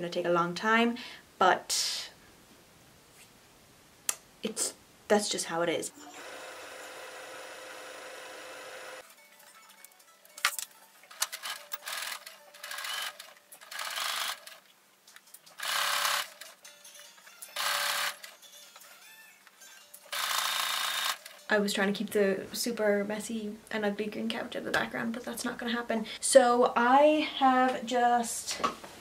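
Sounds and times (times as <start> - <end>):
sewing machine motor running: 6.2 - 9.0, 11.3 - 14.6, 15.6 - 16.6, 17.6 - 18.3, 20.1 - 21.4
sewing machine stitching: 11.1 - 14.6, 15.6 - 16.6, 17.6 - 18.3, 20.1 - 21.4.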